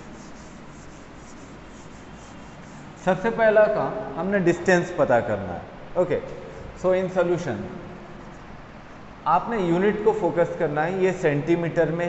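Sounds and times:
duster scrubbing chalkboard: 0:00.0 - 0:03.4.

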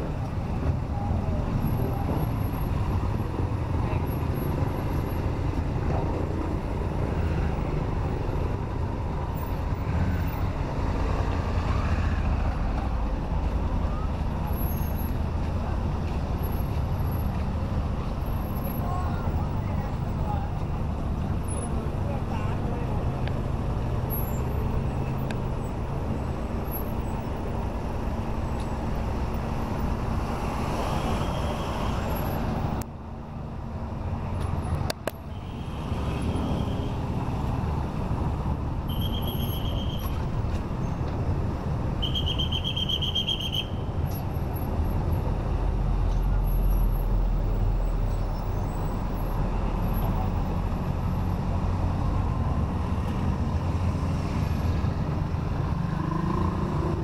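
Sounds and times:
road noise: 0:00.0 - 0:57.0
surrounding cars and motorbikes: 0:00.0 - 0:57.0
vehicle engine rumble: 0:00.0 - 0:57.0.

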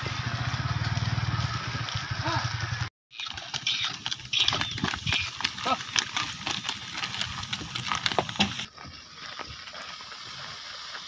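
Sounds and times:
cart knocking and rattling: 0:03.2 - 0:08.7
bullock hoof steps: 0:03.2 - 0:11.0.

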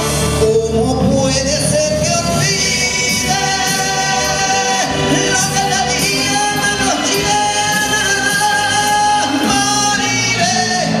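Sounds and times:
instrumental accompaniment: 0:00.0 - 0:11.0
man singing into a microphone: 0:00.3 - 0:11.0.

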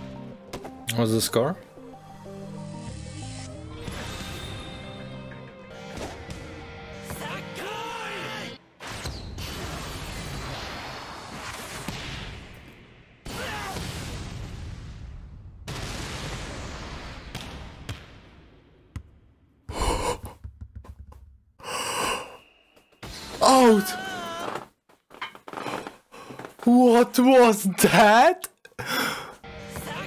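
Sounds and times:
man gasping: 0:19.7 - 0:20.4, 0:21.6 - 0:22.4, 0:28.7 - 0:29.4.

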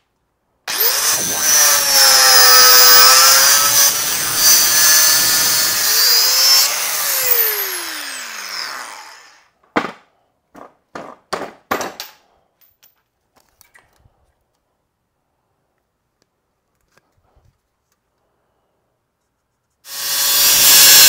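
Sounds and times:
angle grinder cutting metal: 0:00.7 - 0:09.5, 0:19.9 - 0:21.0.

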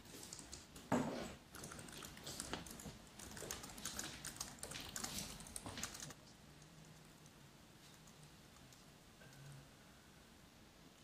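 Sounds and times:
laptop keys and mouse clicking: 0:01.6 - 0:06.2.

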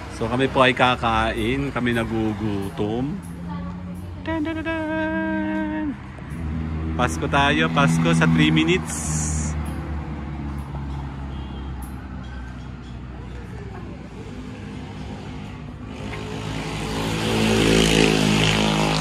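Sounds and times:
large vehicle passing: 0:00.0 - 0:19.0
traffic engine hum: 0:00.0 - 0:19.0.

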